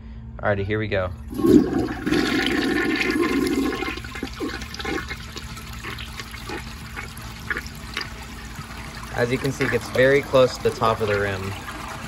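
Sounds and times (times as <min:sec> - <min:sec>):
water gurgling as bowl drains: 0:01.1 - 0:12.0
toilet flushing: 0:01.2 - 0:12.0.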